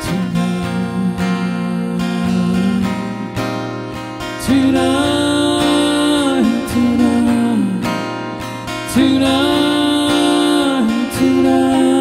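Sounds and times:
man singing: 0.0 - 3.6, 4.3 - 12.0
acoustic guitar strumming: 0.0 - 12.0.

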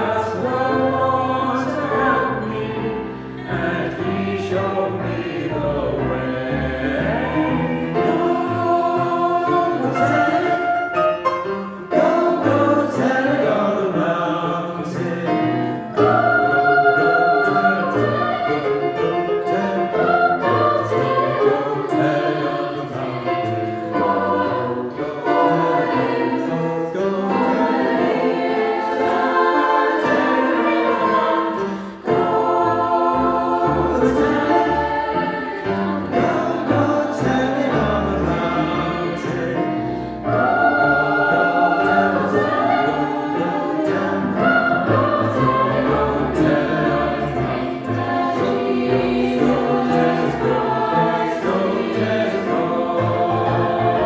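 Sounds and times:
mixed choir singing: 0.0 - 54.0
choir breaths: 0.8 - 13.5, 15.3 - 36.9, 38.6 - 54.0.

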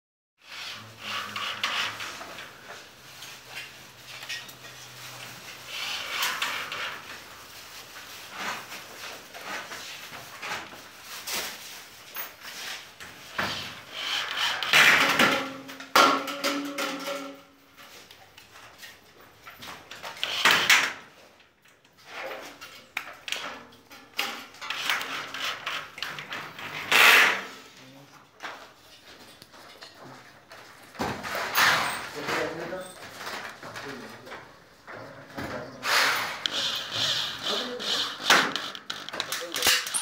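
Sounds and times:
cordless drill whirring: 35.9 - 39.1
screw gun grinding into metal: 35.9 - 40.0.

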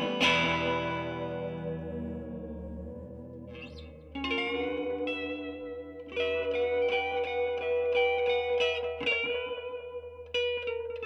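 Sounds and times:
electric guitar with echo: 0.0 - 11.0.

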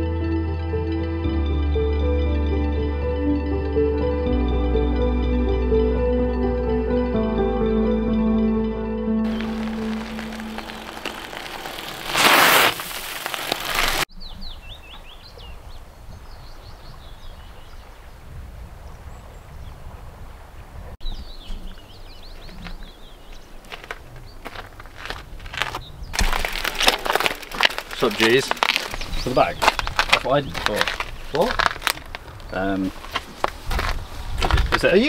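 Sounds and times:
bike rushing past: 9.3 - 14.0
bike rattling: 9.3 - 14.1, 23.8 - 34.9
bird chirps and calls: 21.0 - 23.7.

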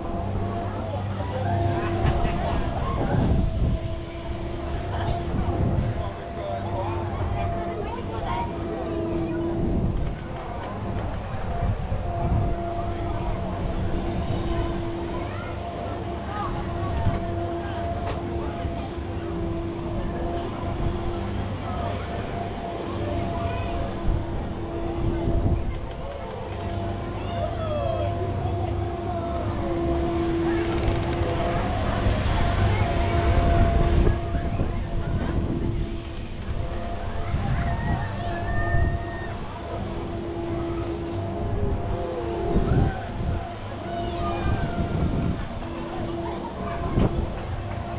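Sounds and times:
people's voices: 0.0 - 47.9
ride machine hum: 0.0 - 47.9.

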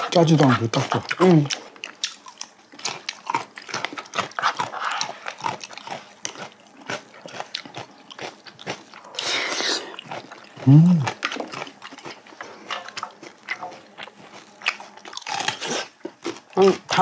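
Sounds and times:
wet chewing: 0.0 - 17.0.

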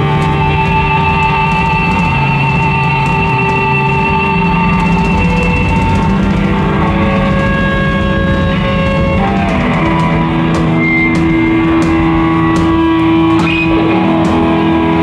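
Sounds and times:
bass guitar: 0.0 - 15.0
drum kit with cymbals: 0.0 - 15.0
electric guitar long notes: 0.0 - 15.0.

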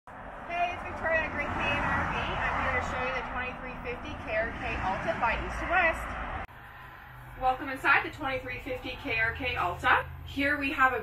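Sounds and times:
low outdoor rumble: 0.1 - 11.0
woman speaking: 0.5 - 6.1, 7.4 - 11.0.

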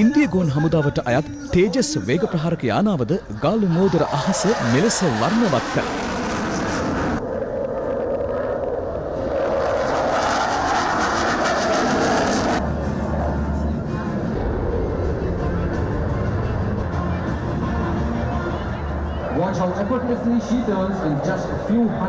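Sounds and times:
jet engine rushing: 3.7 - 17.4.

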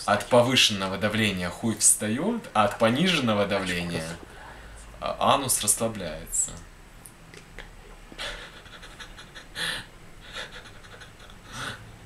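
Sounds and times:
man laughing under his breath: 8.1 - 12.0.

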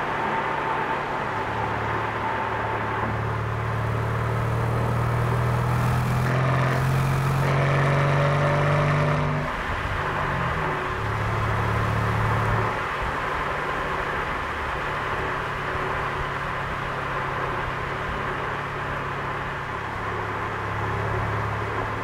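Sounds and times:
car engine accelerating from inside: 0.0 - 14.2.

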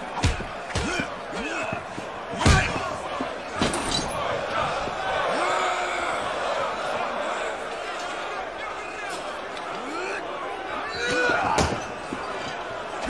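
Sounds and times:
men shouting: 0.0 - 13.0.

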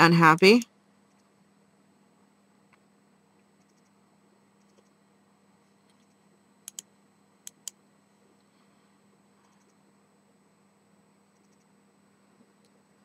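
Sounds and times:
faint steady hum: 0.0 - 13.0
computer mouse clicks: 3.5 - 4.0, 4.6 - 5.0, 5.8 - 7.8, 9.5 - 9.8, 11.3 - 11.7.

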